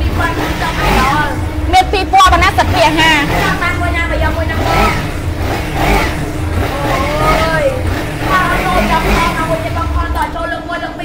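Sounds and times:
motorcycle engine idling: 0.0s - 11.0s
woman talking: 1.7s - 3.5s.

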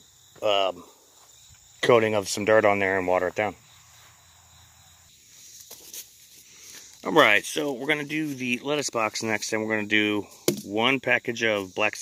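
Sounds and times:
insects chirring: 0.0s - 12.0s.

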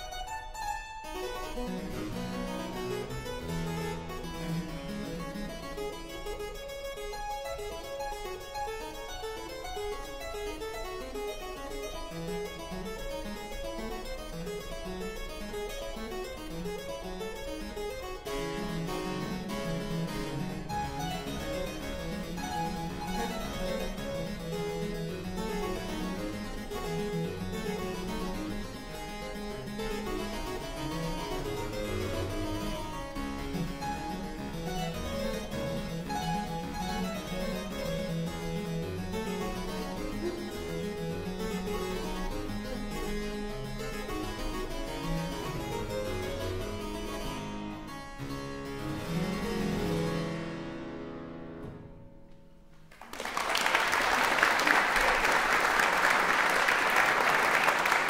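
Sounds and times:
harpsichord playing rapid notes: 0.0s - 51.6s, 54.0s - 58.0s.

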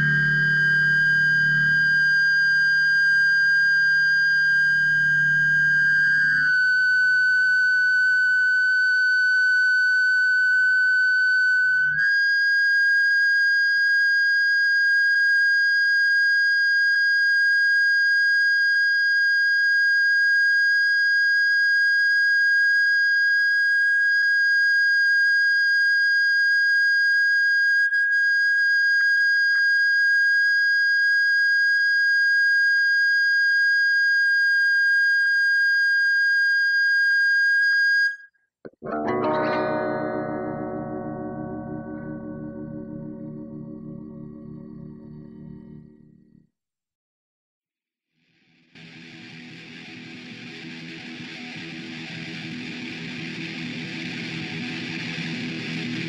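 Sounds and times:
electric guitar feedback tone: 0.0s - 23.0s, 38.7s - 46.4s, 48.8s - 56.0s.

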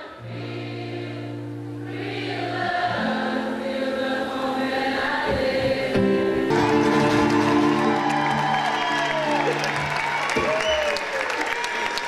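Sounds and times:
crowd singing together: 0.0s - 8.0s
acoustic guitar: 0.0s - 10.8s.

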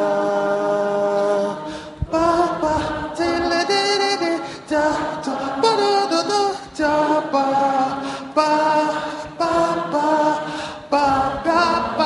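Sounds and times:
audience singing held notes: 0.0s - 12.0s.

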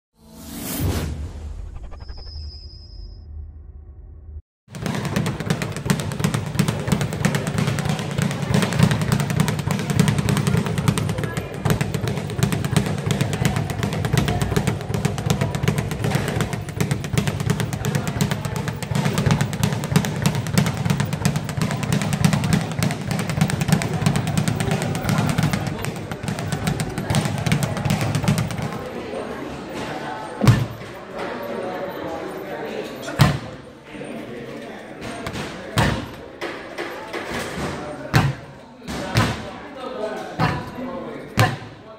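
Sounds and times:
speed bag rattling rapid knocks: 4.7s - 28.9s.

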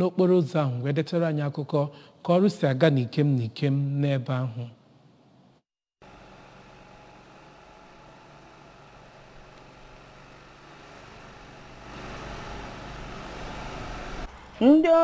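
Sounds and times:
engine and traffic noise: 6.0s - 14.7s.

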